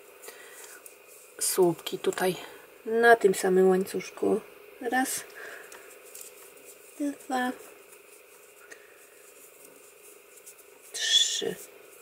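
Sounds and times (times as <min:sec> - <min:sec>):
faint yarn rustle: 0:00.0 - 0:01.9, 0:05.7 - 0:12.0
low steady hum: 0:00.0 - 0:12.0.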